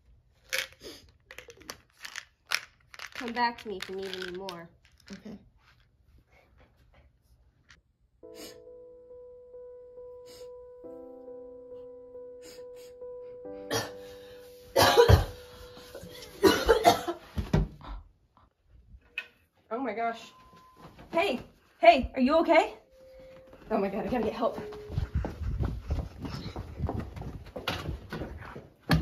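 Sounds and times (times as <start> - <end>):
soft background music note: 8.2 - 16.8, 20.0 - 25.8
woman coughing: 13.7 - 14.0, 14.8 - 15.3, 16.4 - 17.2
running footsteps on hard floor: 23.1 - 29.0.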